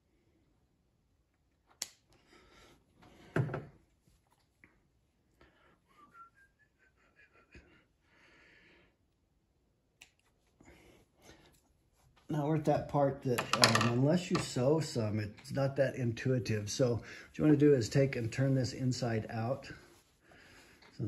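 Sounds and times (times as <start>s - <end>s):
whistled notes rising: 6.0s - 6.9s.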